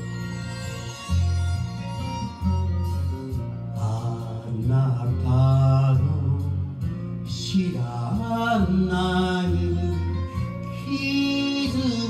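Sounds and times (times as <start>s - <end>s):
karaoke backing track: 0.0s - 12.0s
person singing ballad: 0.1s - 12.0s.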